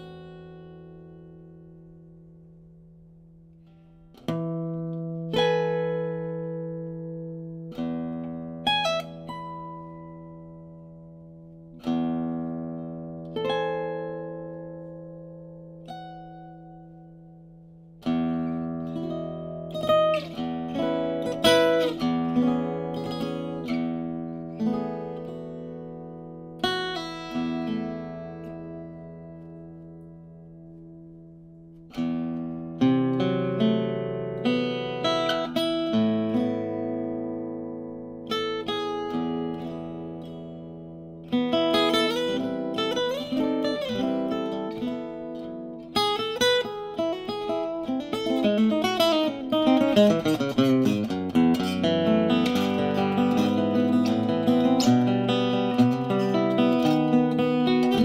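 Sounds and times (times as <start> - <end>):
acoustic guitar chords ringing: 0.0 - 58.0.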